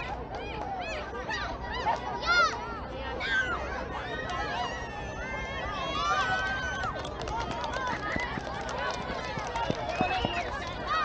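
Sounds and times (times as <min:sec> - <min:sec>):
children shouting: 0:00.8 - 0:07.1, 0:10.0 - 0:11.0.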